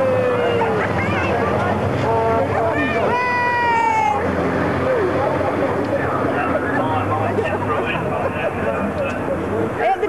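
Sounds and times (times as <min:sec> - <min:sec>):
crowd noise: 0:00.0 - 0:10.0
truck engines rumbling: 0:00.0 - 0:10.0.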